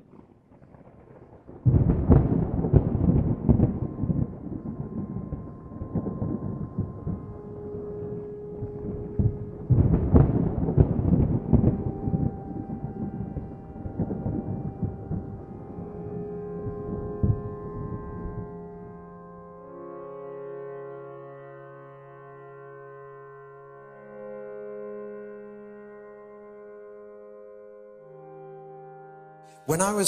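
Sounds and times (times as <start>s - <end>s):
thunder rumbling: 0.0s - 18.5s.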